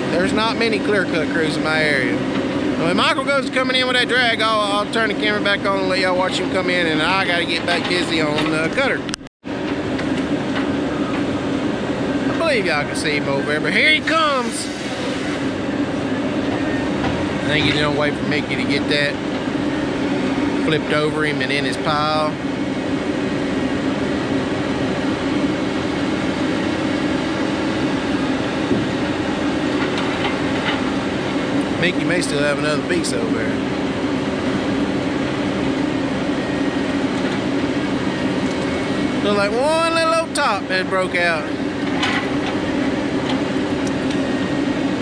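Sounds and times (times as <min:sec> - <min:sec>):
diesel engine running: 0:00.0 - 0:45.0.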